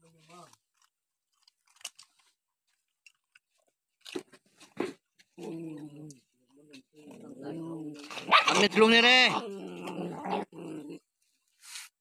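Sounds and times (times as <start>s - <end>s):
dogs chewing crunchy food: 0.5s - 4.2s.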